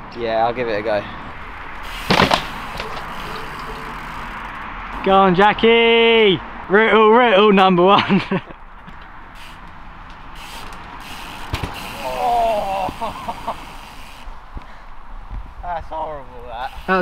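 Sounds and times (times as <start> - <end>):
bike rolling over grass: 1.8 - 5.1, 8.9 - 14.2
bike landing thud: 1.9 - 4.4, 11.4 - 12.0
person crying out: 12.0 - 12.9.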